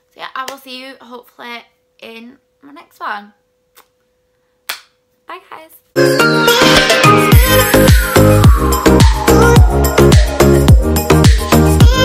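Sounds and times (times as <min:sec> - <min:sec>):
short sharp snap: 0:03.7 - 0:04.0, 0:04.6 - 0:05.0.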